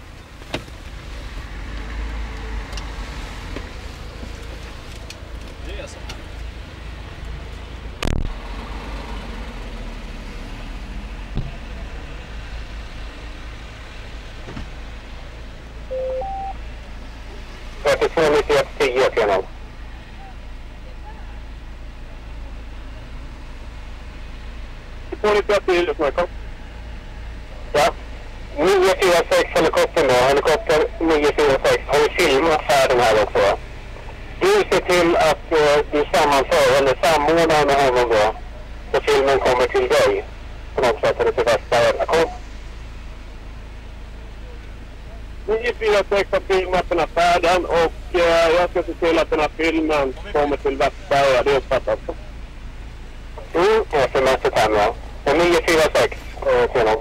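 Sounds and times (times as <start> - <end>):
two-note rising beep: 15.9 - 16.6.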